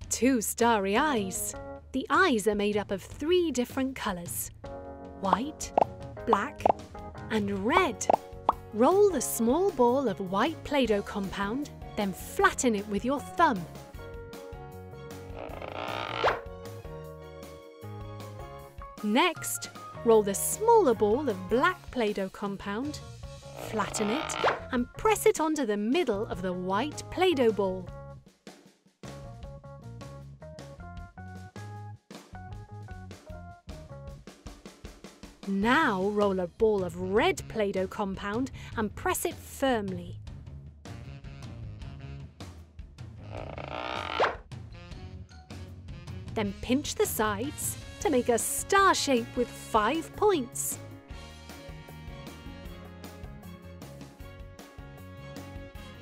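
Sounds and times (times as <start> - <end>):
light children's background music: 0.1 - 28.2, 35.4 - 40.2, 44.9 - 56.0.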